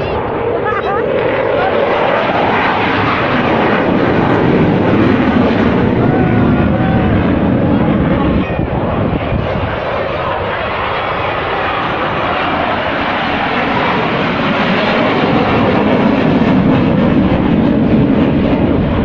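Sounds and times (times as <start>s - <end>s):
crowd voices: 0.0s - 19.0s
jet engine roar flying past: 0.0s - 19.0s.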